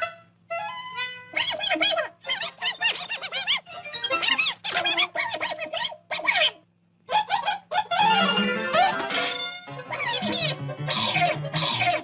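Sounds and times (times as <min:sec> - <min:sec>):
cartoon music with plucked bass: 0:08.0 - 0:12.0.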